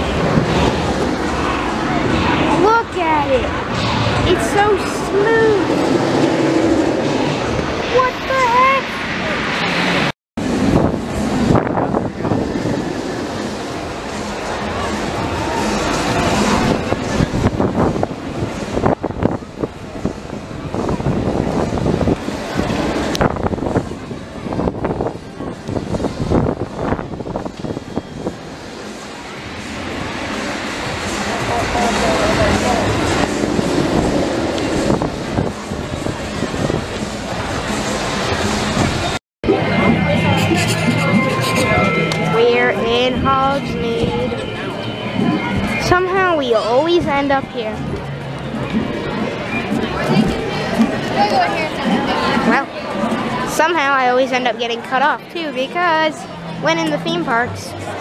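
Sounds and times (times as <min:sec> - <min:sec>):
wind buffeting microphone: 0:00.0 - 0:39.2
crowd voices: 0:00.0 - 0:58.0
roller coaster train on track: 0:00.0 - 0:58.0.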